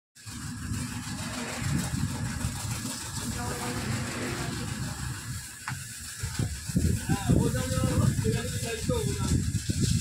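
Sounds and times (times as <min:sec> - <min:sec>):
pressure washer motor drone: 0:00.2 - 0:10.0
water jet spraying hiss: 0:00.2 - 0:10.0.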